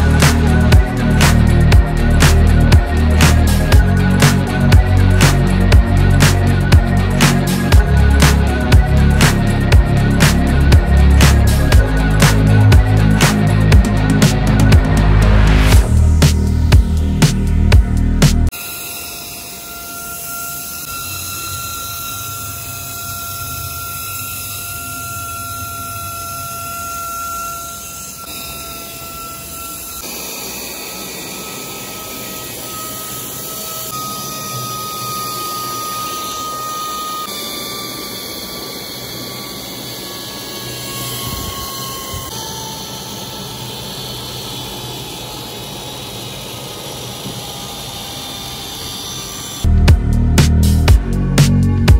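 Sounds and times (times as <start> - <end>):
electric motor fan whine: 0.0 - 51.9.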